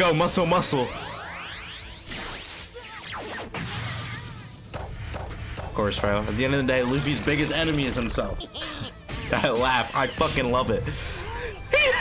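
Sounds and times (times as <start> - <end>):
background music: 4.1 - 12.0.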